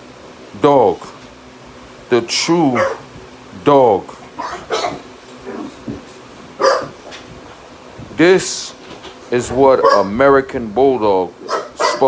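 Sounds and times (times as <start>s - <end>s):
dog barking: 2.7s - 3.1s, 4.4s - 5.8s, 6.6s - 7.0s, 9.8s - 10.2s, 11.4s - 12.0s.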